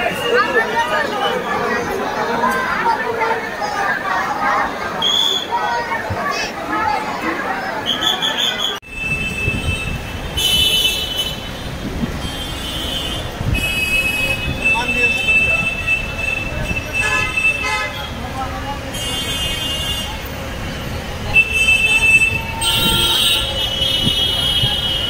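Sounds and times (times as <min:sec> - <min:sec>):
city street noise: 0:00.0 - 0:25.0.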